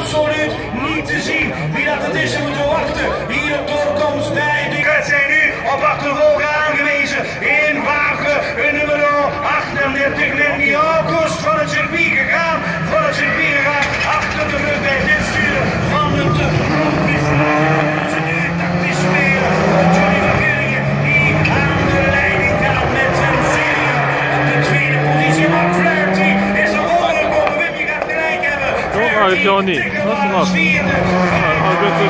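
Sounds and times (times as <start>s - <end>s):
racing car engines revving: 0.0s - 32.0s.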